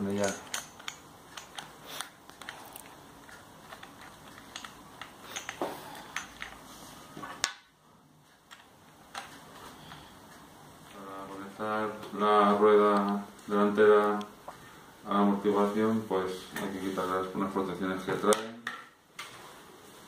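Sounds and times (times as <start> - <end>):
hex key clicking on bolts: 0.2 - 1.8.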